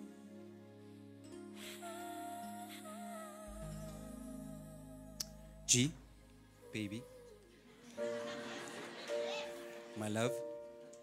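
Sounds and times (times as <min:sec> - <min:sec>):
soft background music: 0:00.0 - 0:11.0
deep bass note: 0:03.5 - 0:07.3.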